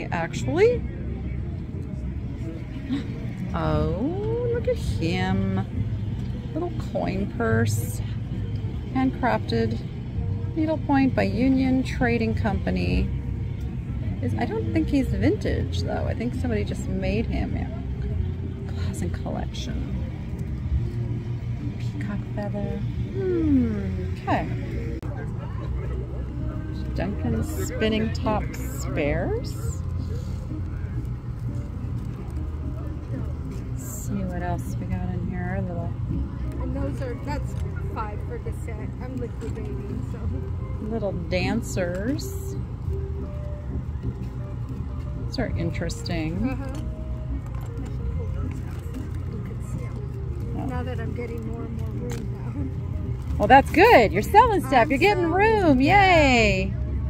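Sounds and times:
faint conversation: 0.0 - 57.0
low outdoor rumble: 0.0 - 57.0.

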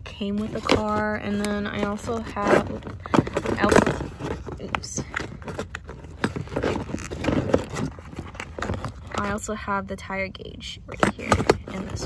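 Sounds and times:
plastic crinkling: 0.0 - 9.4.

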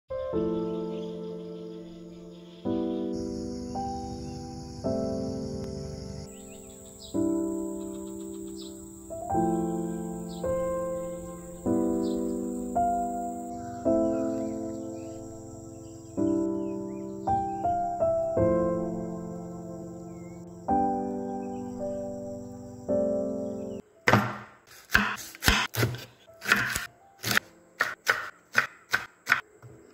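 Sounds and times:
insect trill: 0.1 - 23.8
slow keyboard chords: 0.1 - 24.0
faint chirps: 0.2 - 18.4.

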